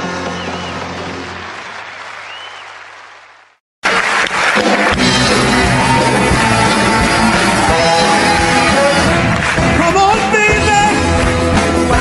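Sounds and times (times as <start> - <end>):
audience applause: 0.0 - 12.0
loud guitar music: 4.5 - 12.0.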